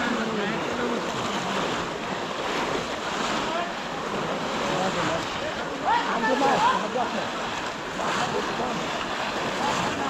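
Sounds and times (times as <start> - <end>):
water sloshing and splashing: 0.0 - 10.0.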